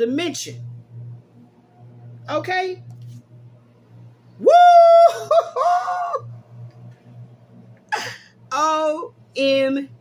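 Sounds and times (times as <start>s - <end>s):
woman whooping: 4.4s - 6.3s.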